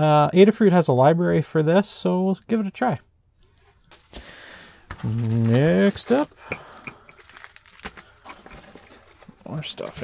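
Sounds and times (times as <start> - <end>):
bubble wrap crinkling: 4.9 - 6.4, 7.0 - 9.9.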